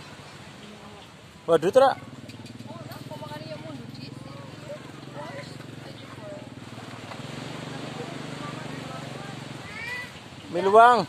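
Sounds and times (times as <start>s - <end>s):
outdoor voices: 0.0s - 11.0s.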